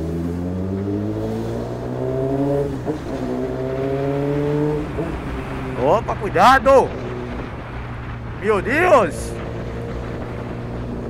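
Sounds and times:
motorcycle engine accelerating: 0.0 - 8.4, 9.2 - 11.0.

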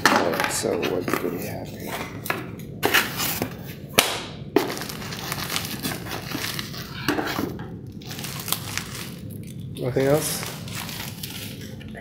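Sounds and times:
cardboard snapping: 4.0 - 6.8.

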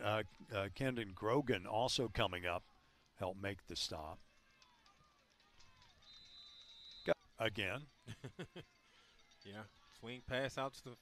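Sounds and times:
referee's whistle: 6.0 - 7.2.

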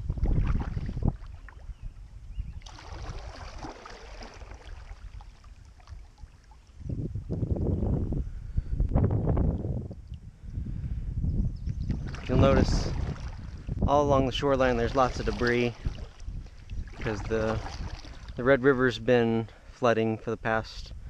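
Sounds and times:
kayak paddle stroking water: 0.0 - 7.0, 11.7 - 18.4
low rumbling on microphone: 0.0 - 18.6.

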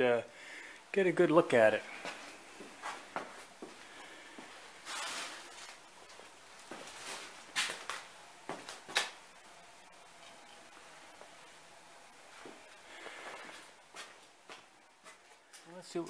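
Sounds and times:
light footsteps and scuffs: 2.0 - 9.1, 12.3 - 15.7.

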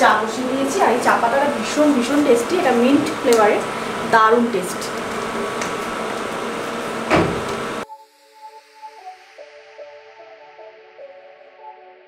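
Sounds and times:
soft background music: 0.0 - 4.9.

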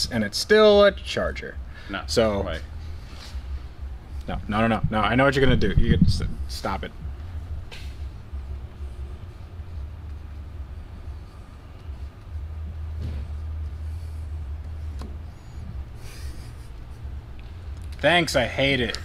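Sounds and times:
low steady rumble: 0.0 - 19.0.

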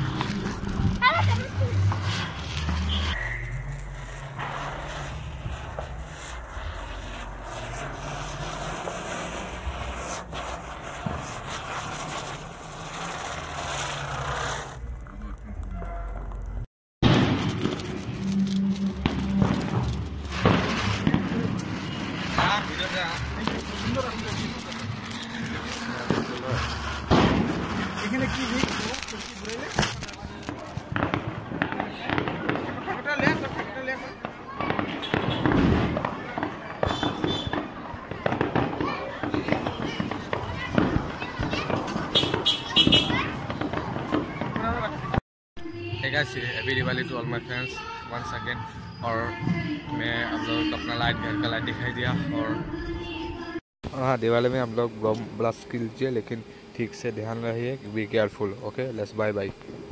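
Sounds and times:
firework hissing sparks: 0.0 - 14.8, 17.0 - 45.2
crowd voices: 17.6 - 45.2.

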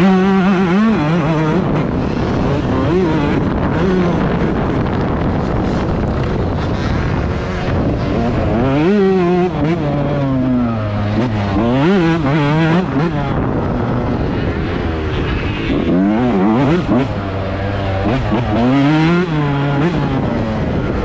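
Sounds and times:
motocross engine revving: 0.0 - 5.0, 5.6 - 21.0.

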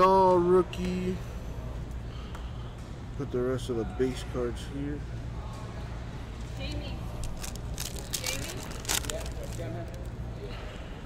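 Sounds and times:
faint background chatter: 0.0 - 11.0
trading cards shuffled: 7.2 - 10.1
crackling snaps: 7.2 - 10.2.

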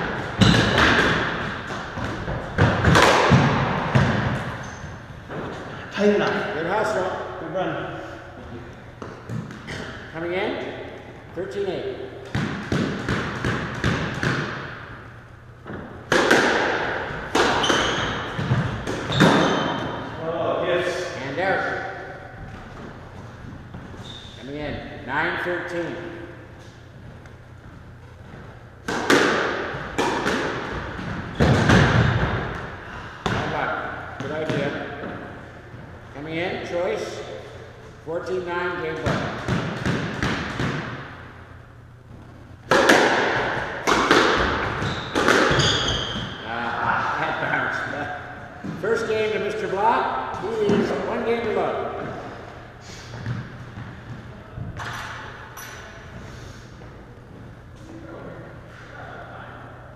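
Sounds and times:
squash ball cracking off racquets and walls: 0.0 - 5.6, 12.2 - 20.1, 28.2 - 35.4, 38.9 - 41.5, 42.3 - 47.0, 53.1 - 55.5
shoes squeaking on hardwood floor: 17.5 - 19.8, 23.8 - 24.4, 44.8 - 46.4.

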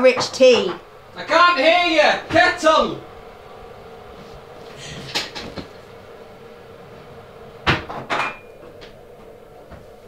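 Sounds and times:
crockery knocking: 0.0 - 0.9
soft rustling: 3.0 - 7.4.

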